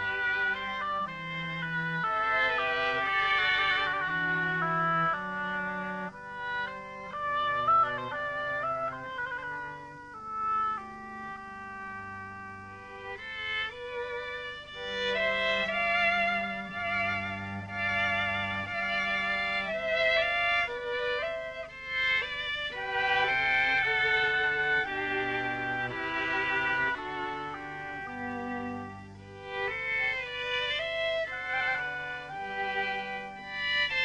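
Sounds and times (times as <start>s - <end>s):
oboe: 0.0s - 34.0s
string ensemble: 0.0s - 34.0s.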